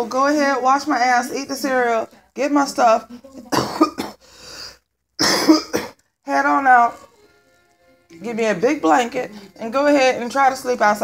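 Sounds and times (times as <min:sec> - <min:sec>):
woman coughing: 0:03.5 - 0:04.3, 0:05.2 - 0:06.0
soft breath: 0:04.2 - 0:04.9.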